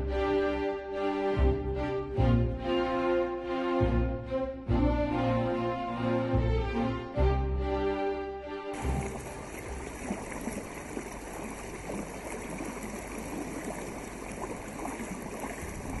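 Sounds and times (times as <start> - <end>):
music: 0.0 - 9.1
rushing water with splashes: 8.8 - 16.0.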